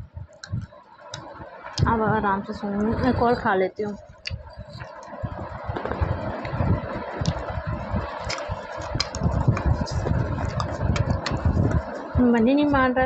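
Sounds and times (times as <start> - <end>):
slate pencil being chewed: 8.2 - 11.4.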